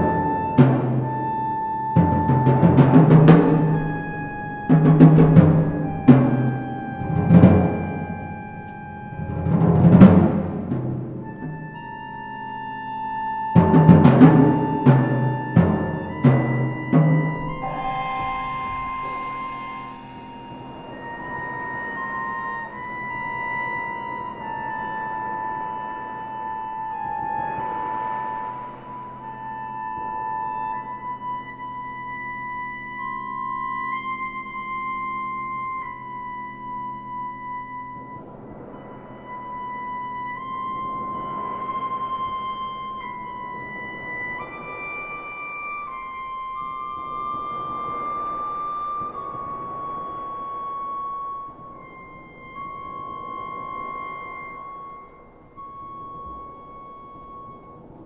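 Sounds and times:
slow orchestral music: 0.0s - 58.0s.

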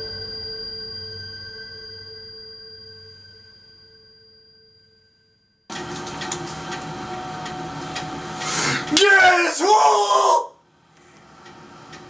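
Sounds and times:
machine-like hum: 5.7s - 10.0s.

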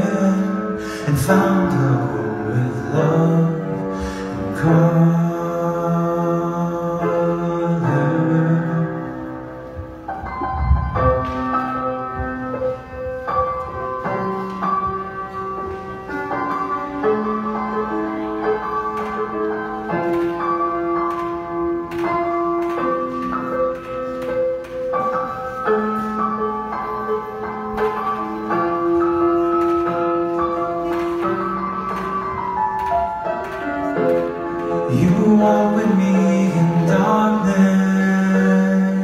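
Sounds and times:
piano chords and melody: 0.0s - 39.0s.

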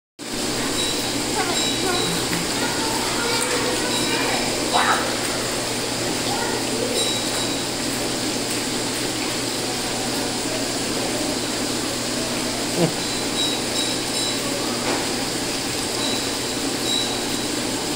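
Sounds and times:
water rushing and splashing: 0.2s - 17.9s
children's voices: 0.4s - 7.4s.

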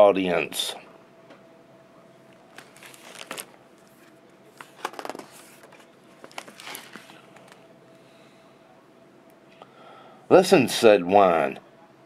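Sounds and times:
book pages turning: 2.4s - 7.6s
paper rustling and crinkling: 2.5s - 7.6s.

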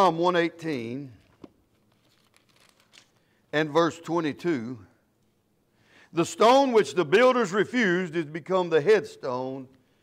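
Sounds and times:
thin pages rustling: 1.4s - 3.2s.

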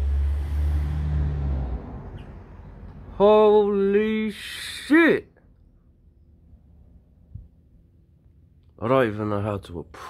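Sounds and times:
motor vehicle passing by: 0.0s - 3.4s.

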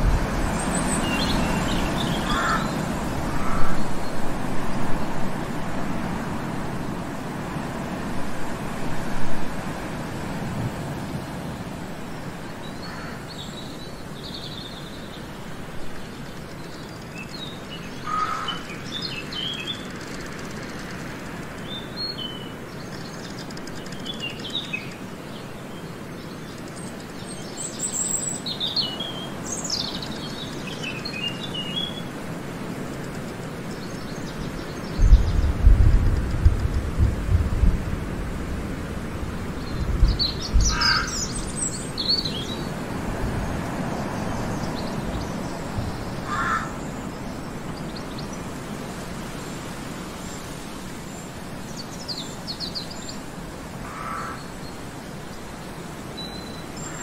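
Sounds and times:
deep gusty rumbling: 0.0s - 11.4s, 34.8s - 46.4s
forest background hiss: 0.0s - 57.0s
small birds chirping: 0.4s - 4.3s, 12.5s - 36.9s, 39.6s - 53.3s.

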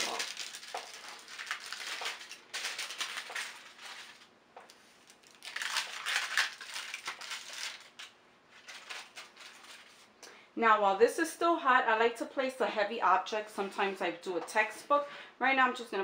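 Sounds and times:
paper peeling and crinkling: 0.0s - 4.3s, 5.0s - 10.1s.

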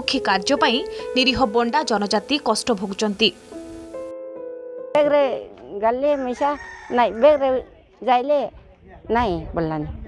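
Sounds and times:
woman speaking into microphone: 0.0s - 3.4s, 5.0s - 10.0s.

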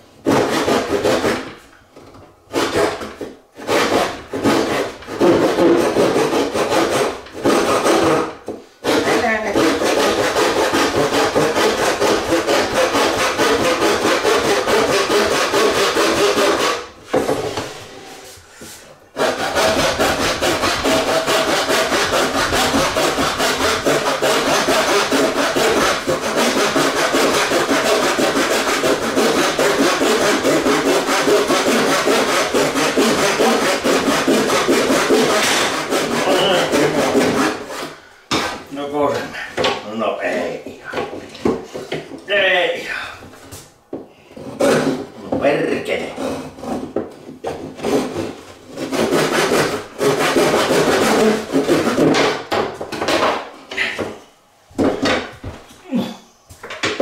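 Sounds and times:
handsaw cutting wood: 0.2s - 1.6s, 2.5s - 18.2s, 19.2s - 41.5s, 44.4s - 54.0s.

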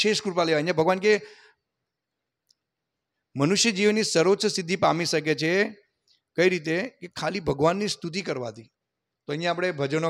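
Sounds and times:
man speaking: 0.0s - 1.3s, 3.3s - 10.0s.

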